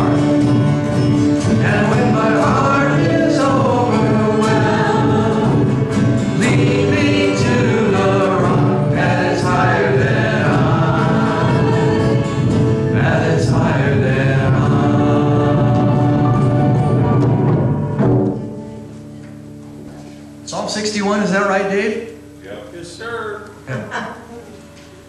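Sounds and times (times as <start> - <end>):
worship band playing: 0.0 - 23.8
acoustic and electric guitar: 0.0 - 25.0
male and female voices singing: 1.4 - 16.8.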